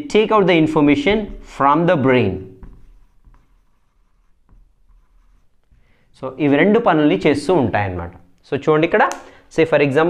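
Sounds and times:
marker pen on whiteboard: 0.4 - 7.0.

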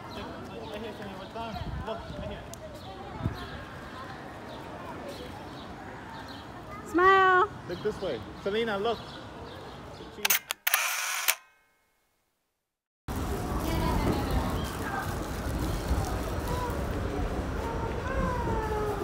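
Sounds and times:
camera shutter clicks: 10.3 - 11.5
faint voices: 13.1 - 19.0
subway car rumbling: 13.1 - 19.0.

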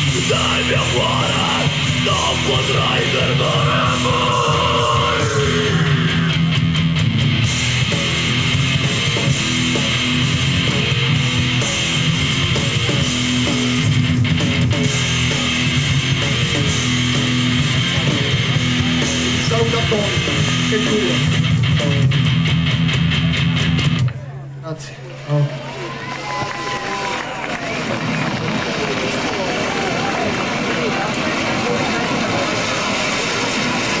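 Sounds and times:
live rock band playing: 0.0 - 24.2.

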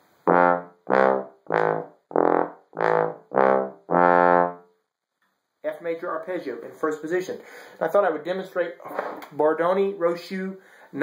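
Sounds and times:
contrabass trombone arpeggio: 0.2 - 4.6.

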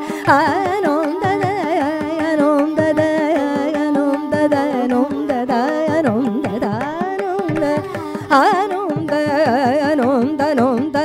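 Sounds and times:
tanpura drone: 0.0 - 11.0
violin: 0.0 - 11.0
woman singing ornamented melody: 0.1 - 11.0.

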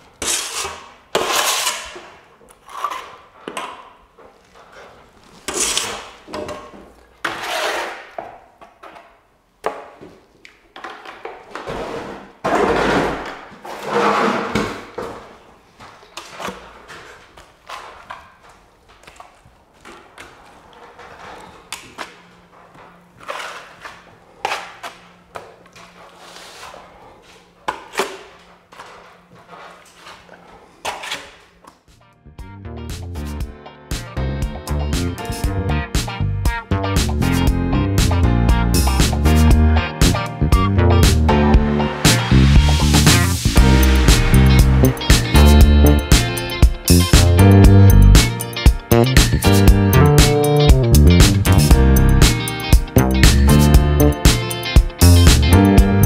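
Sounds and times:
trowel scraping wet plaster: 0.2 - 3.2, 5.4 - 6.2, 7.2 - 8.2, 11.6 - 14.8, 23.2 - 25.0, 25.7 - 31.5.

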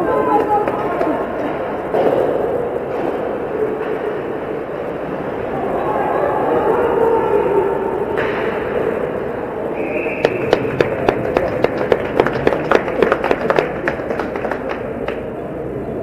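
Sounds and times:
crowd noise: 0.0 - 16.0
whistle blast: 9.7 - 10.6.

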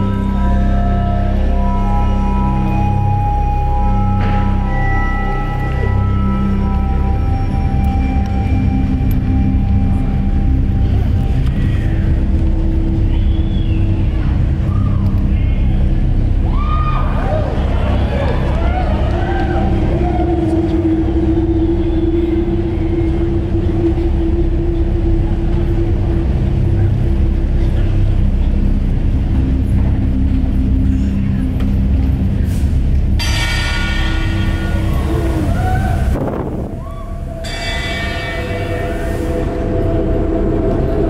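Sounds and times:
deep rumbling drone: 0.0 - 41.0
bright hissing shimmer: 37.4 - 41.0.

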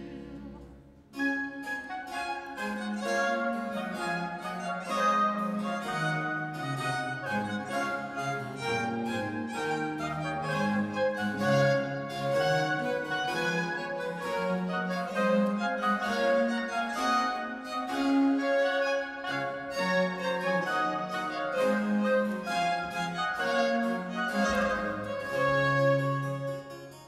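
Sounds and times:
harpsichord plucking chords: 0.0 - 27.0
violins holding notes: 0.0 - 27.0.

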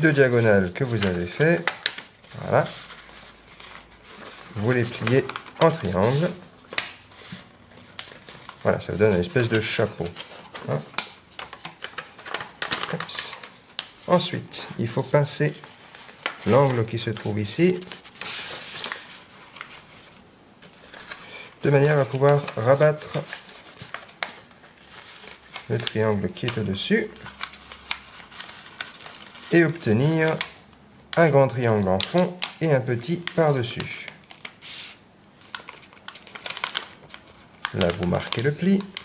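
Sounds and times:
paper rustling: 0.0 - 30.6, 31.2 - 39.0
crisp paper tick: 0.8 - 2.1, 20.6 - 29.5, 30.2 - 34.6, 35.4 - 39.0.

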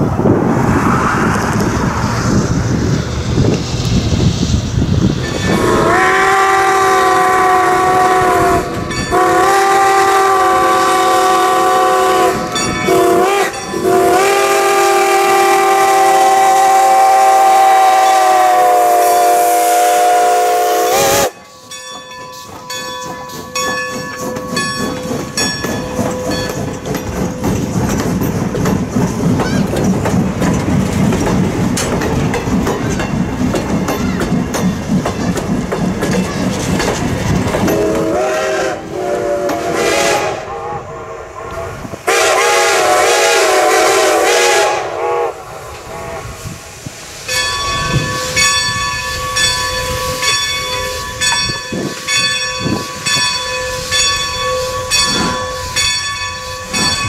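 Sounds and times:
wind on microphone: 0.0 - 10.0, 36.5 - 43.6, 44.6 - 57.0
train wheels clicking over rail joints: 1.4 - 18.8, 21.0 - 40.6, 45.6 - 57.0
steam whistle blasts: 5.4 - 21.4, 37.7 - 46.7.

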